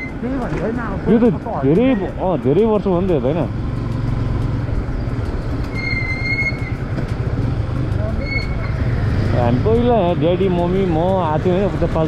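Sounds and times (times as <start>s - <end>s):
motorcycle engine running: 0.0s - 12.0s
road and wind noise: 0.0s - 12.0s
high steady squeal: 5.0s - 6.9s, 8.2s - 8.9s.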